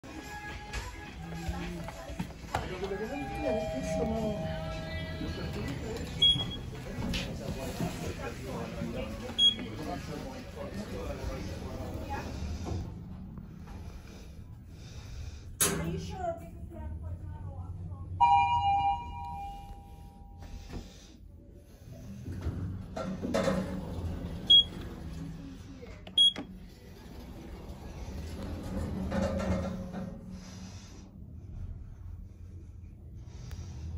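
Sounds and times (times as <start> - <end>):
shop background music: 0.0 - 9.8, 26.0 - 26.6
voices: 0.2 - 12.8
low steady hum: 11.9 - 22.2.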